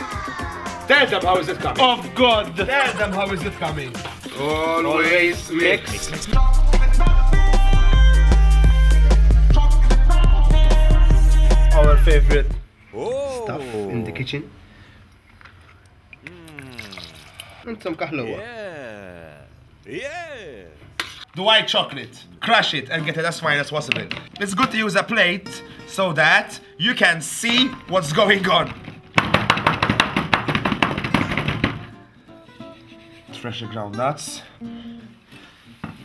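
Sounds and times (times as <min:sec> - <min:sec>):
person speaking: 0:13.0 - 0:14.4, 0:16.2 - 0:17.6, 0:18.2 - 0:21.0.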